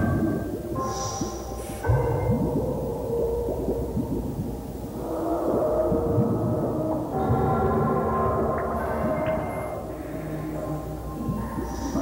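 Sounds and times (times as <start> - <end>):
ambient music with held low tones: 0.0 - 12.0.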